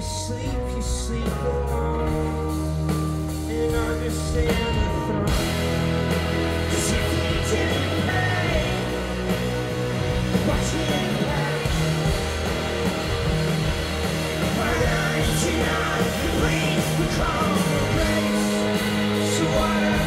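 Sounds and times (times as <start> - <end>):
rock band playing live through pa: 0.0 - 20.0.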